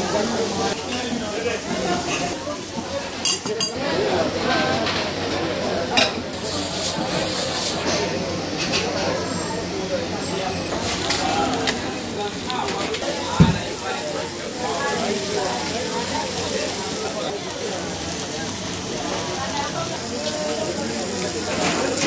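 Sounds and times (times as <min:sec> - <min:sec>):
lobster sizzling on grill pan: 0:00.0 - 0:07.9, 0:10.6 - 0:22.0
voices chattering: 0:00.0 - 0:22.0.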